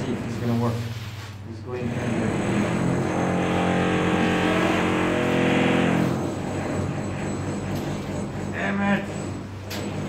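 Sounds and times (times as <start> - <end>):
engine running: 1.9 - 10.0.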